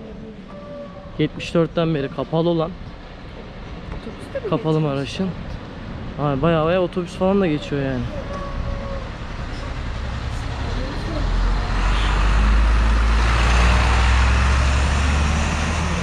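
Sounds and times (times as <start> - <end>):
bus engine rumble: 0.0 - 16.0.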